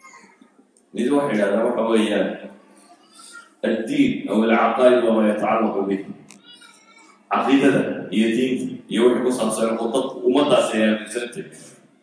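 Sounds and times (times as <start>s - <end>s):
man preaching: 1.0s - 2.4s, 3.2s - 6.6s, 7.3s - 11.7s.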